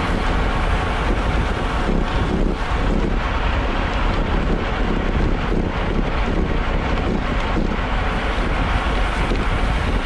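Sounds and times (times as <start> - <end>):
bike tyres on rough asphalt: 0.0 - 10.0
wind rushing over microphone: 0.0 - 10.0.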